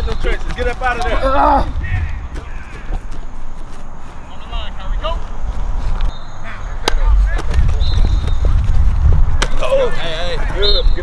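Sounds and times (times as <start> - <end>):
distant shouting: 0.0 - 3.2
low rumble: 1.2 - 2.9.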